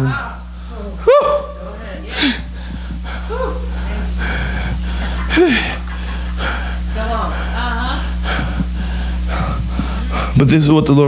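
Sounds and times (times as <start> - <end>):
man breathing heavily: 0.0 - 1.2, 2.0 - 10.5
steady low hum: 0.0 - 11.0
man shouting: 1.0 - 1.6, 3.3 - 3.7.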